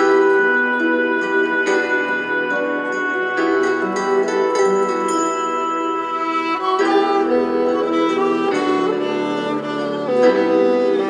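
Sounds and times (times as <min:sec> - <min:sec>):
solo violin slow bowed notes: 0:00.0 - 0:11.0.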